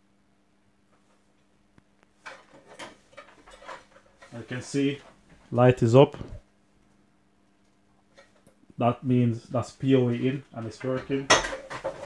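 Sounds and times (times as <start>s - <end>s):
handling knocks clicks and scrapes: 2.0s - 5.5s, 10.0s - 12.0s.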